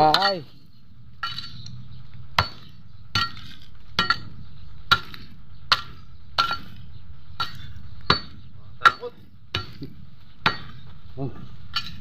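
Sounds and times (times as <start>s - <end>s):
blade clinking on stones: 1.2s - 1.8s, 11.7s - 12.0s
hoe chopping stony ground: 2.3s - 12.0s.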